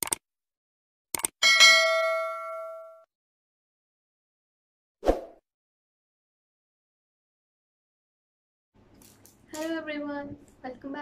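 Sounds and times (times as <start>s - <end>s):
bright bell ding: 1.4s - 3.1s.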